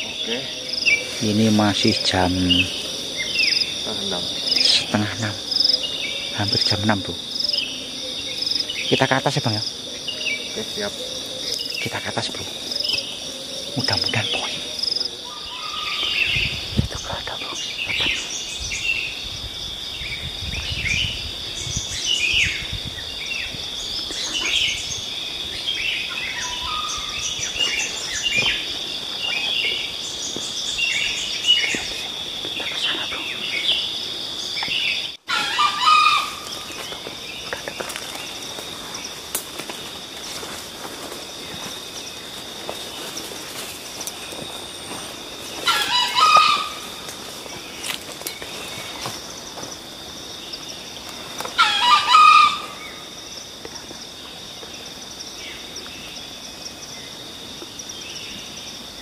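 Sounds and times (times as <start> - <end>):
small birds chirping: 0.0 - 58.8
high insect drone: 0.0 - 59.0
rooster crowing: 35.3 - 36.5, 45.6 - 47.0, 51.6 - 53.0.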